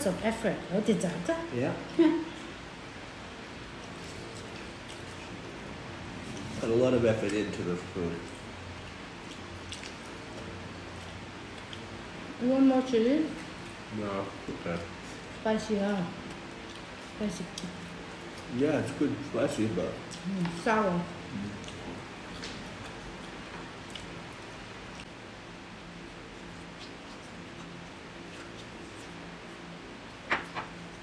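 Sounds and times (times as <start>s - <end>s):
steady low hum: 0.0s - 31.0s
people chewing: 3.6s - 12.4s, 16.1s - 31.0s.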